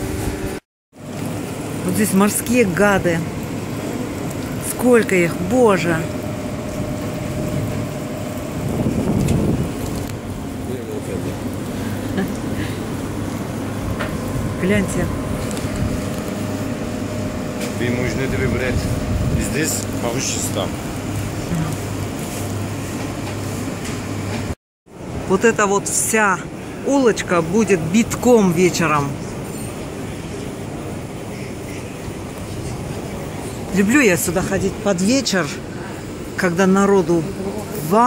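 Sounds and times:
low even hum: 0.0s - 24.0s
market street background noise: 0.0s - 38.0s.

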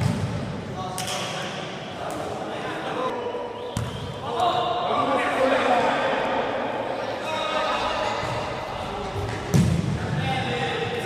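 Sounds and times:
ball kicked and bouncing on gym floor: 0.0s - 1.1s, 9.1s - 10.0s.

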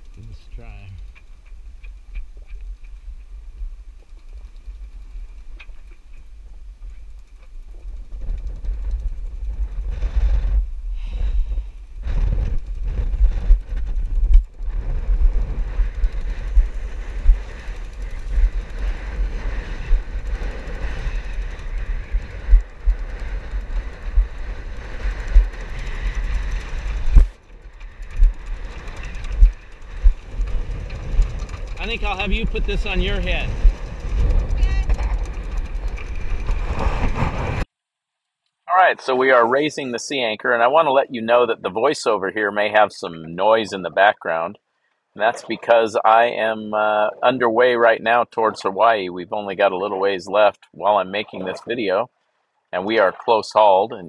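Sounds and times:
wind buffeting microphone: 0.0s - 37.7s.

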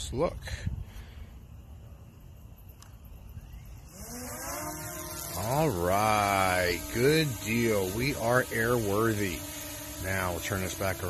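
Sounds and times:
drone propellers whining: 3.4s - 11.0s.

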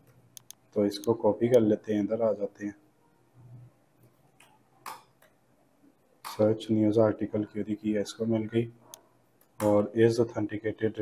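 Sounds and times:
computer keys clicking: 0.0s - 1.2s.

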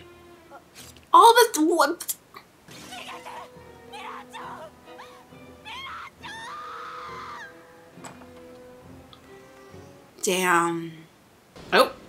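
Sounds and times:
woman shouting and crying: 2.9s - 7.5s.

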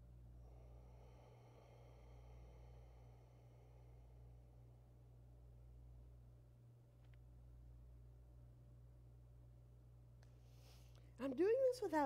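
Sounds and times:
steady low hum: 0.0s - 12.0s
faint long exhale: 0.4s - 5.0s.

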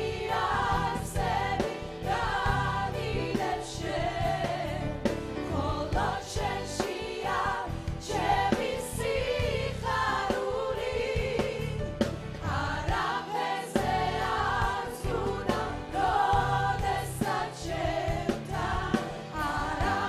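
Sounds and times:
choir singing gospel: 0.0s - 20.0s.

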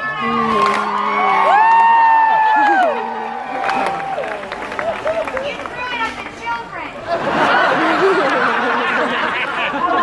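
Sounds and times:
audience cheering and whooping: 0.1s - 5.7s.

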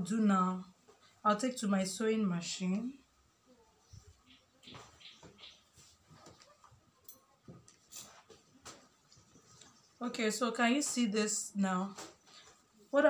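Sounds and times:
faint rustles: 3.8s - 10.0s.

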